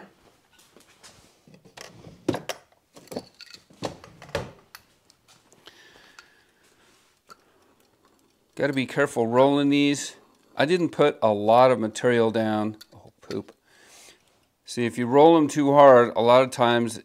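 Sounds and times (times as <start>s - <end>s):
tools clicking and knocking: 1.5s - 5.2s, 12.7s - 13.6s.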